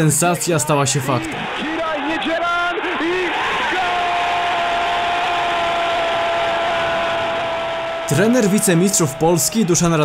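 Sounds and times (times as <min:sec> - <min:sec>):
stadium crowd roaring: 0:00.7 - 0:10.0.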